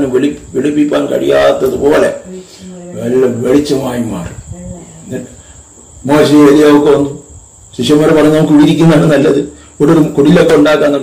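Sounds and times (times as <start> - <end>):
faint high-pitched whine: 0.0 - 11.0
man preaching: 6.0 - 11.0.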